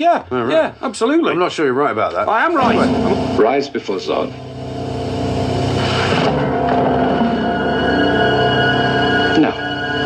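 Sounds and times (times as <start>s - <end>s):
sustained orchestral chords: 2.6s - 10.0s
low rumble: 4.2s - 8.9s.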